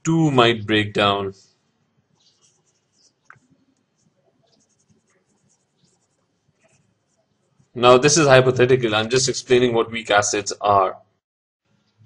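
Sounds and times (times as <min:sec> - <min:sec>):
pen scratching on paper: 0:02.2 - 0:07.7.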